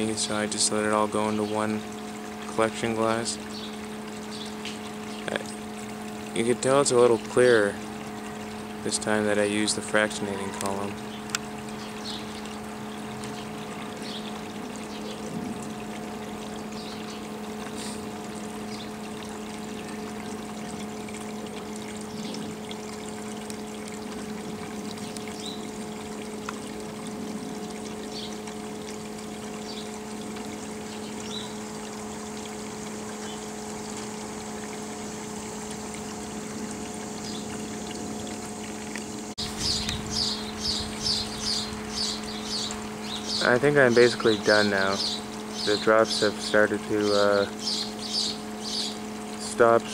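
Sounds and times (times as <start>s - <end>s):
faint water trickling: 0.0s - 49.9s
steady low hum: 0.0s - 49.9s.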